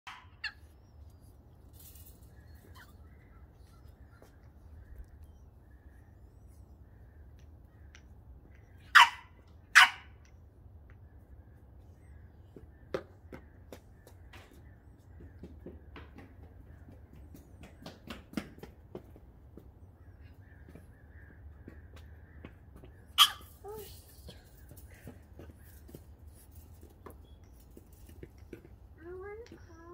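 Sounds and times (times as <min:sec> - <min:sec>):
puppy whining: 0:02.4 - 0:04.4
puppy yapping: 0:08.9 - 0:10.1, 0:23.2 - 0:23.6.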